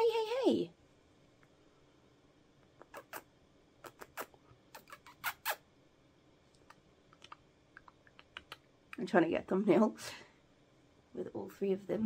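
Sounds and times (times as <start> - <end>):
kissing noises with lips: 2.7 - 5.7, 6.6 - 9.0.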